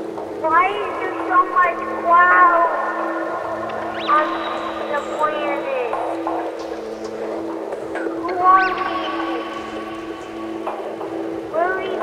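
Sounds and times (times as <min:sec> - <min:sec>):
low synthesizer drone: 0:00.0 - 0:12.0
swooping whistle-like synth tone: 0:02.6 - 0:06.2, 0:08.2 - 0:10.6.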